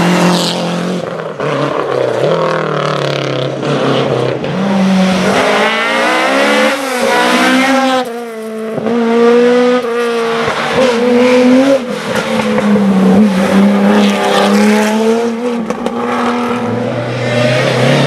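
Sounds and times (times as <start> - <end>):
rally car engine at full throttle: 0.0 - 18.0.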